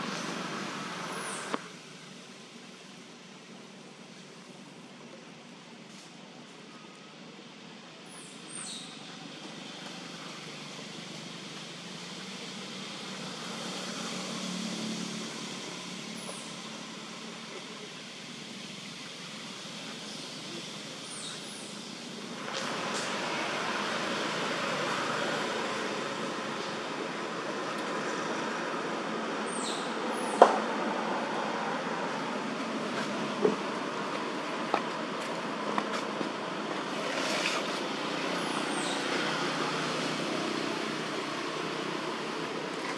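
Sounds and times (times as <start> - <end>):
outdoor background noise: 0.0 - 42.9.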